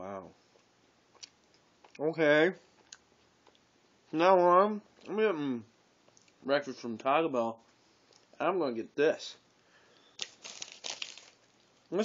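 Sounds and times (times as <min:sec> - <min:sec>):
paper food wrapper crinkling: 0:10.2 - 0:12.0.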